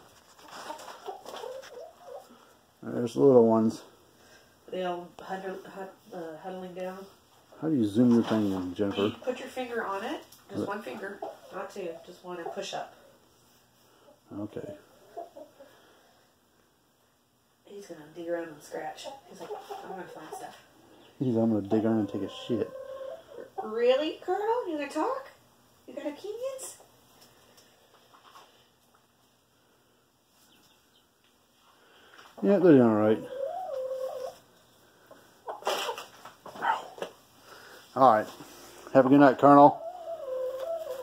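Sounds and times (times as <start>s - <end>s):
chickens clucking softly: 0.4s - 2.5s, 14.1s - 15.8s, 18.9s - 23.9s, 33.0s - 34.4s, 35.0s - 37.1s, 39.5s - 41.0s
rooster calling: 33.1s - 34.4s.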